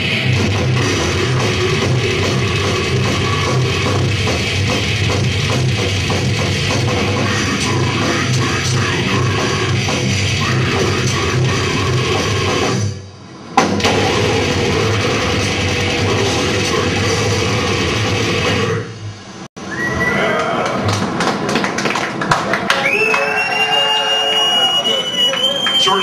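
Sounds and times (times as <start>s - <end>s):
death metal band playing live: 0.0s - 12.8s, 13.8s - 18.7s
crowd noise: 19.6s - 26.0s.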